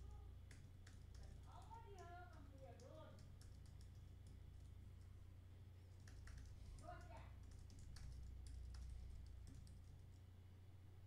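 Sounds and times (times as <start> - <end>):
computer keyboard typing: 0.5 - 4.7, 5.9 - 10.2.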